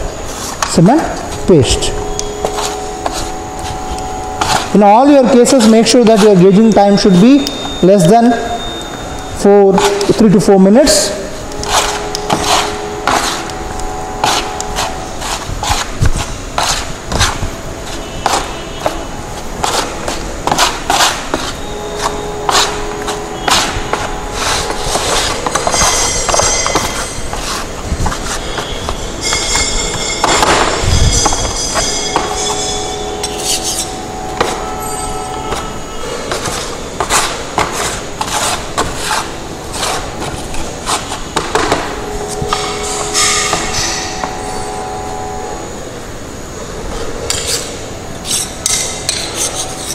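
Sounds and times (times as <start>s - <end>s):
steel trowels scraping and clacking: 19.6s - 44.7s, 47.3s - 49.9s.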